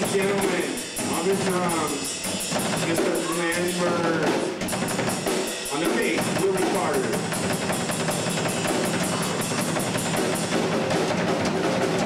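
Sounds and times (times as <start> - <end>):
drum kit with cymbal beat: 0.0 - 12.0.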